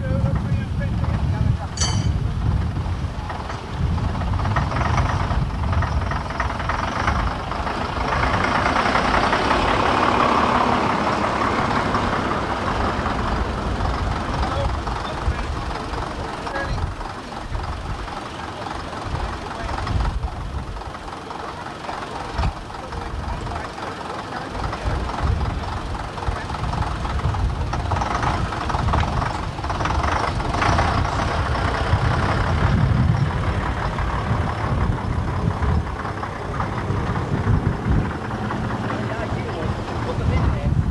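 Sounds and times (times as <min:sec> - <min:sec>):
bus engine rumbling: 0:00.0 - 0:40.9.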